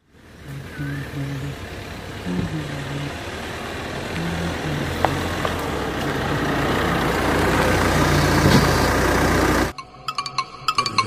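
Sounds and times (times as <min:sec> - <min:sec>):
car engine running: 0:00.0 - 0:09.8.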